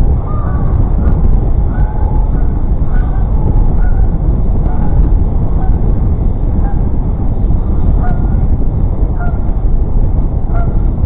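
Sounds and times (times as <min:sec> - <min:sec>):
road noise: 0:00.0 - 0:11.0
wind rumble on microphone: 0:00.0 - 0:11.0
geese honking: 0:00.2 - 0:00.8, 0:01.7 - 0:05.0, 0:10.5 - 0:10.8.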